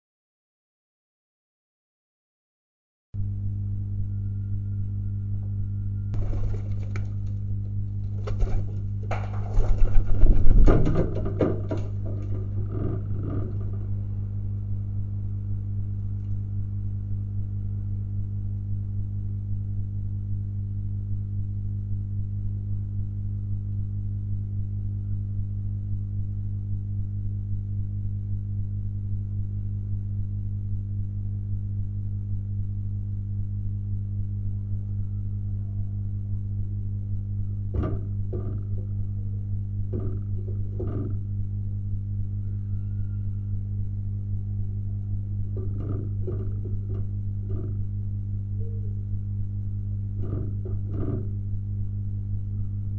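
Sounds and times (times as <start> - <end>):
electrical mains hum: 3.2 - 52.9
short knocks: 37.7 - 38.9, 39.9 - 41.2, 45.6 - 47.9, 50.2 - 51.4.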